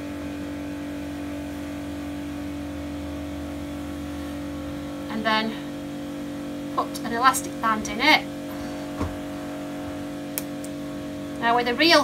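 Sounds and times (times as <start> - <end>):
background hum with tones: 0.0 - 12.0.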